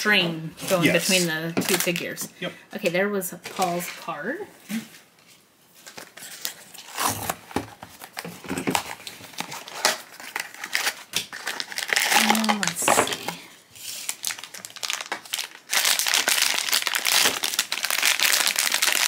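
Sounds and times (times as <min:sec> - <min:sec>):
foil bag crinkling: 0:05.8 - 0:19.0
cardboard box being opened: 0:06.3 - 0:10.4.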